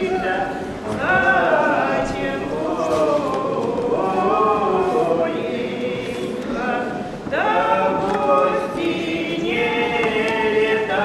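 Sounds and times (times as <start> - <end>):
woman and man singing unaccompanied: 0.0 - 11.0.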